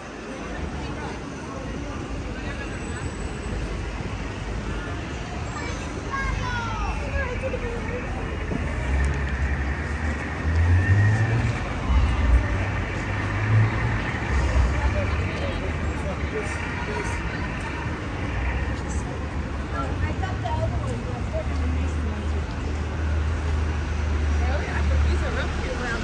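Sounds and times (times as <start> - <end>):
passers-by talking: 0.0 - 26.0
road traffic passing: 0.0 - 26.0
vehicle engine rumble: 0.0 - 26.0.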